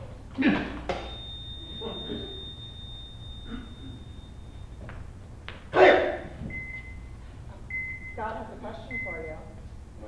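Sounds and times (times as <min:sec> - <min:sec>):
heart monitor flatline tone: 0:00.9 - 0:05.2, 0:06.4 - 0:08.2.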